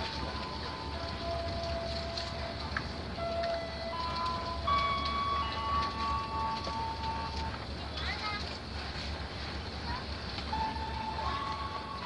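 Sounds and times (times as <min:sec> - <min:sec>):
rumble of wheels on track: 0:00.0 - 0:12.0.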